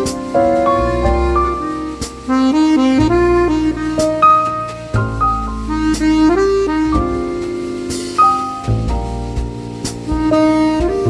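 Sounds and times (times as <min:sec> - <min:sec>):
button accordion melody: 0:00.0 - 0:08.9, 0:09.7 - 0:11.0
jazz quartet music: 0:00.0 - 0:11.0
low bass notes: 0:00.0 - 0:11.0.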